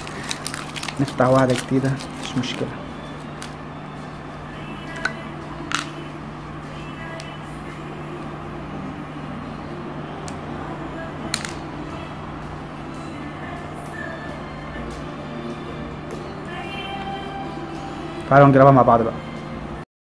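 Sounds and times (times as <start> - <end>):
steady low hum: 0.0 - 19.8.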